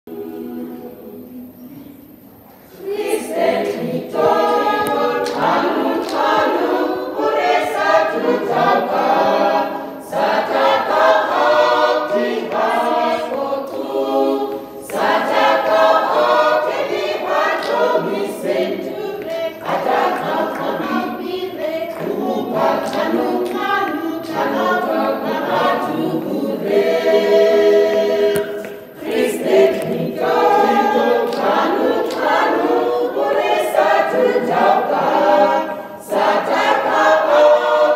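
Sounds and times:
choir singing a cappella: 0.0s - 37.9s.

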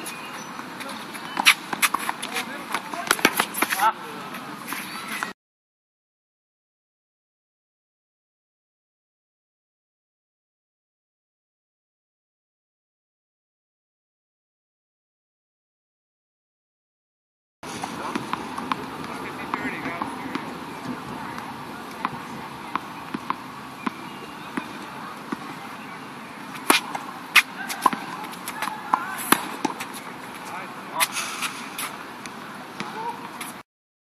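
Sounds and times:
tennis balls bouncing: 0.0s - 5.3s, 17.7s - 33.6s
outdoor background noise: 0.0s - 5.4s, 17.6s - 33.6s
tennis balls struck by rackets: 0.1s - 5.3s, 17.7s - 33.6s.

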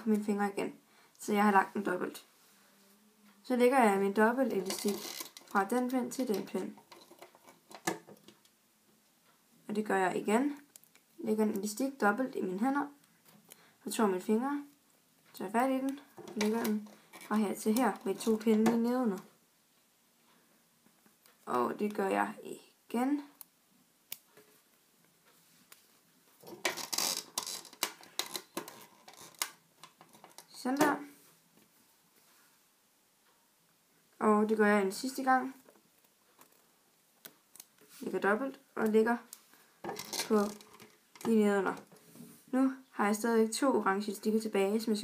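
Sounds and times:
small clicks and rustles: 4.4s - 8.6s, 24.1s - 32.5s, 35.5s - 38.2s, 38.8s - 42.4s.

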